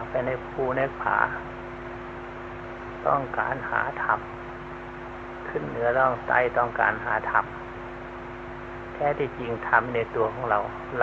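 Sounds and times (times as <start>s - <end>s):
man speaking: 0.0s - 1.5s, 3.0s - 4.3s, 5.5s - 7.5s, 9.0s - 11.0s
low hum with hiss: 0.0s - 11.0s.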